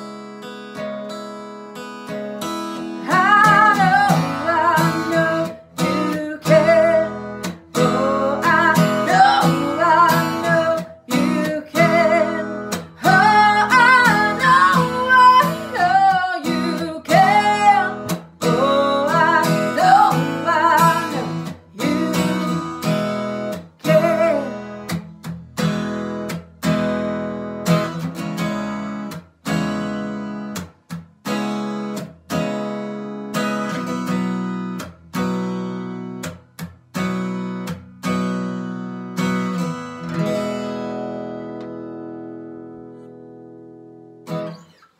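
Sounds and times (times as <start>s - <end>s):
strummed acoustic guitar: 0.0s - 44.9s
woman singing: 2.8s - 25.0s.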